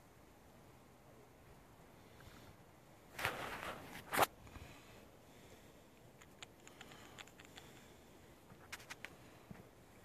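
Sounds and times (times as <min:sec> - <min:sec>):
rustling scrape: 0:03.1 - 0:04.3.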